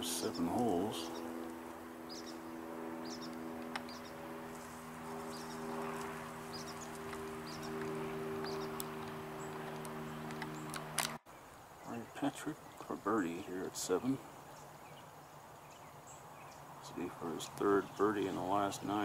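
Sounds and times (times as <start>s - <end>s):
mechanical hum with low pitches: 0.0s - 11.2s.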